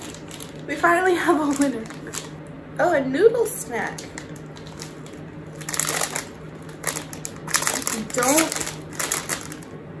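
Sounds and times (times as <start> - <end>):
plastic packet crinkling: 0.0 - 2.4, 3.9 - 9.7.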